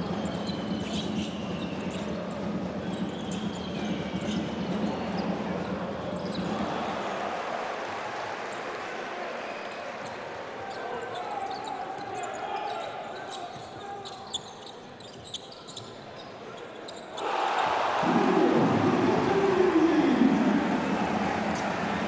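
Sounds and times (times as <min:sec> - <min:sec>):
sneaker squeaks: 0:00.1 - 0:02.2, 0:06.1 - 0:06.5, 0:10.0 - 0:17.3
crowd cheering: 0:06.4 - 0:11.1, 0:17.2 - 0:22.0
crowd murmur: 0:17.2 - 0:22.0.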